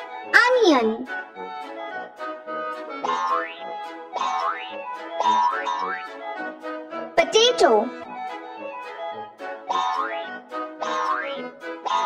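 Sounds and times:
light children's music: 0.0 - 12.0.

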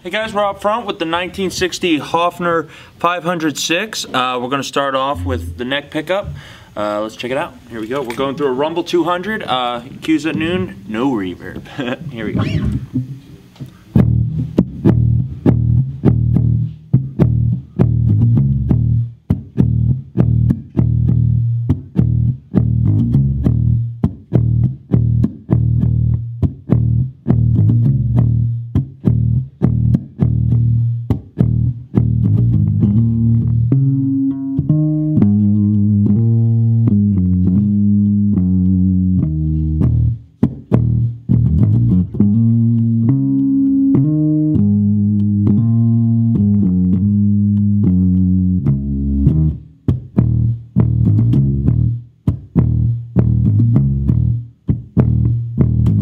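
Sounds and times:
electric bass played fingerstyle: 0.0 - 56.0.

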